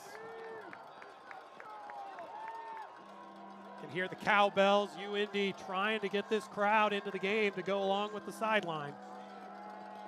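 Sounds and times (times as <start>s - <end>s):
faint crowd noise: 0.0s - 10.0s.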